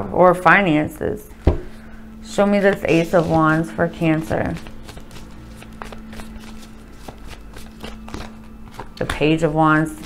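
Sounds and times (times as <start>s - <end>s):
cards being shuffled: 2.6s - 10.0s.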